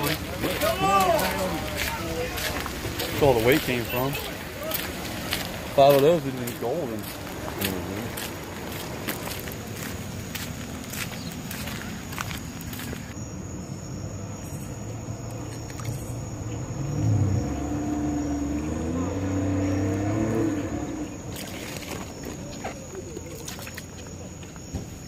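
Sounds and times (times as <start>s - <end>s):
footsteps on ramp: 0.0s - 13.2s.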